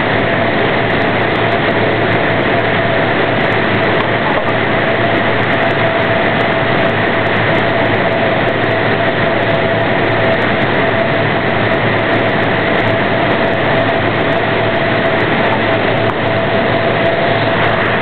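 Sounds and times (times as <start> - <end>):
aircraft turbine engine running: 0.0 - 18.0.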